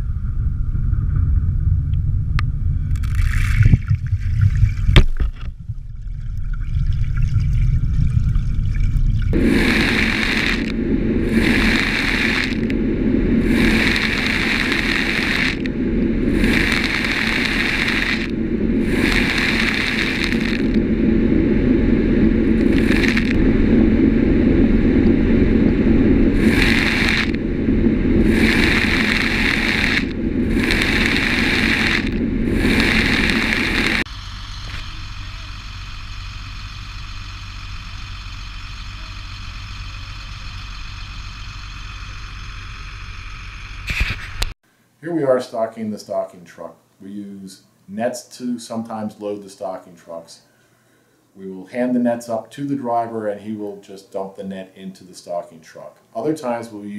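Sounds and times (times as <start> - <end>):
truck engine rumble: 0.0 - 44.6
feed blower rushing bursts: 9.3 - 43.8.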